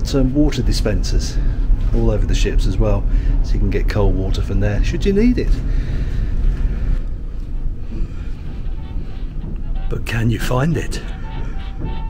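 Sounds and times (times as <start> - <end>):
low machinery rumble: 0.0 - 12.0.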